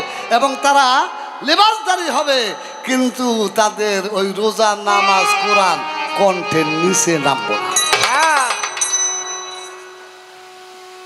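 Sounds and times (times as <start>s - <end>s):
echo of voice: 0.0s - 8.7s.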